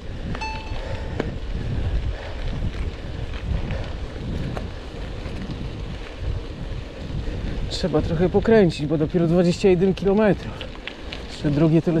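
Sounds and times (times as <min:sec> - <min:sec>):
wind buffeting microphone: 0:00.0 - 0:12.0
brief thin high tone: 0:00.4 - 0:01.1.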